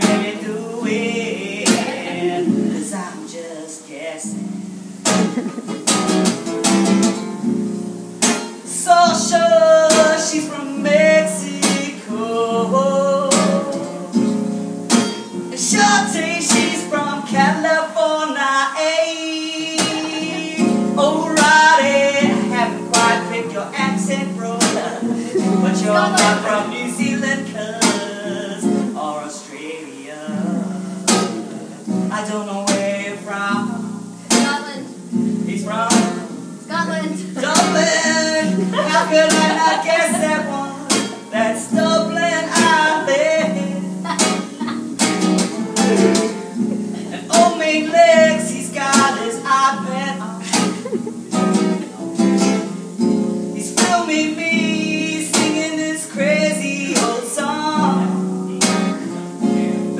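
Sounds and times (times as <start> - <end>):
man singing: 0.0 - 4.5, 8.5 - 59.9
acoustic guitar strumming: 0.0 - 59.9.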